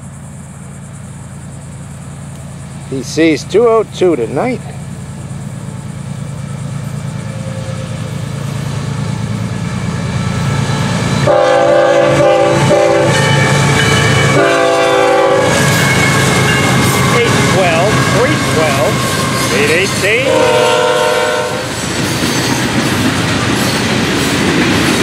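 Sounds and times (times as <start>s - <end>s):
diesel locomotive engines: 0.0s - 25.0s
train rolling past: 0.0s - 25.0s
locomotive air horn blasts: 11.2s - 21.7s.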